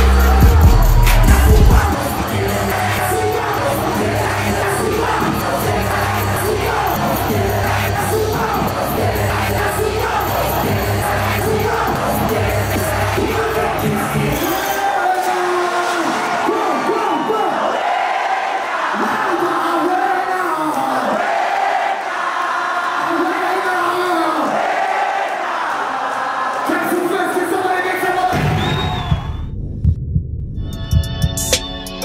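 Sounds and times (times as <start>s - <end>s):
bass-heavy hip-hop beat: 0.0s - 14.6s, 29.1s - 32.0s
large crowd voices: 0.0s - 29.0s.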